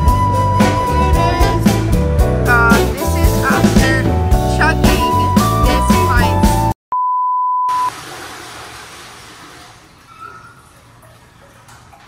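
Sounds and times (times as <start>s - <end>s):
background music: 0.0s - 6.8s
high bleep tone: 6.9s - 7.9s
toilet flushing: 7.8s - 12.0s.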